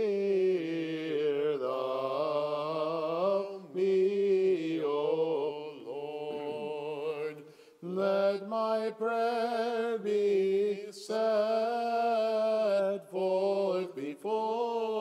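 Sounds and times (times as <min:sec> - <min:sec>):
men chanting a slow hymn: 0:00.0 - 0:15.0.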